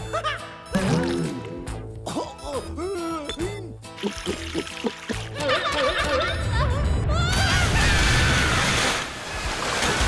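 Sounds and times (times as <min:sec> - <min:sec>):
background music: 0:00.0 - 0:08.6
cartoon gulping glugs: 0:03.5 - 0:05.3.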